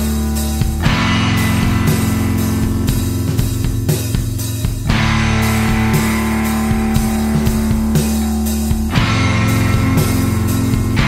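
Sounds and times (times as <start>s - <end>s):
drum kit beat: 0.0s - 11.0s
electric guitar: 0.0s - 11.0s.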